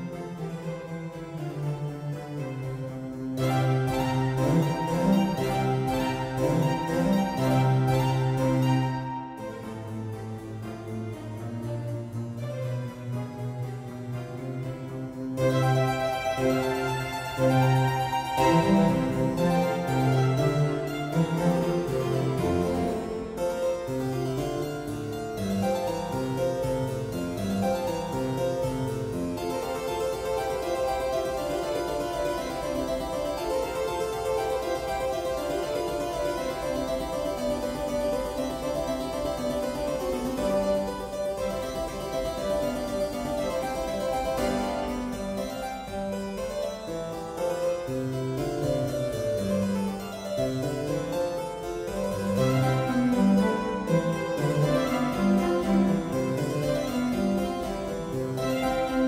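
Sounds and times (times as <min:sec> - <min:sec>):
harpsichord concerto music: 0:00.0 - 0:59.0.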